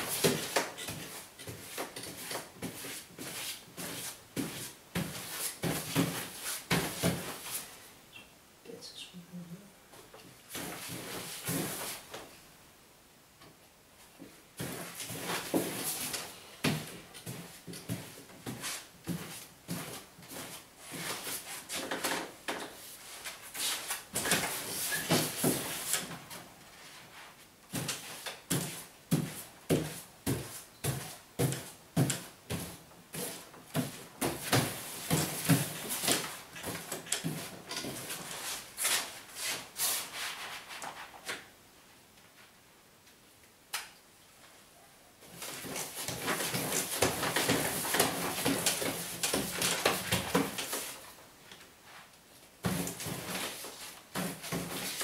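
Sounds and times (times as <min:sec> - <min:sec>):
paste brush swishing on wallpaper: 0:38.2 - 0:41.1.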